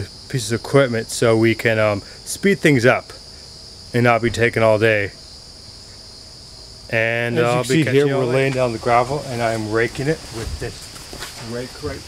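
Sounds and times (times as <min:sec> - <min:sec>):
man talking: 0:00.0 - 0:03.2, 0:04.0 - 0:05.2, 0:06.9 - 0:10.8, 0:11.4 - 0:12.0
crickets trilling: 0:00.0 - 0:12.0.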